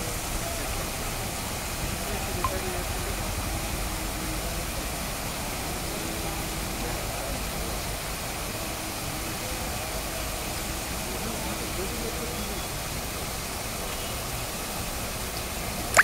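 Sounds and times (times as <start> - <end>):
water rushing: 14.7 - 16.0.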